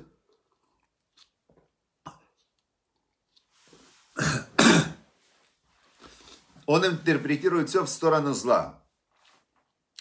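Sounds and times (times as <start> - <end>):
man coughing: 4.2 - 5.0.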